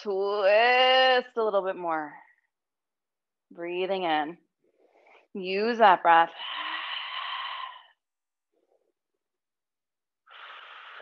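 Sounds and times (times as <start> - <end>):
woman breathing: 6.3 - 8.1, 10.2 - 11.0.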